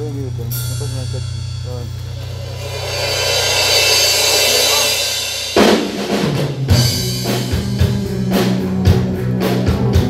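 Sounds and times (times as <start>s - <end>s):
amplifier hum: 0.0s - 6.1s
cymbal wash: 0.0s - 8.2s.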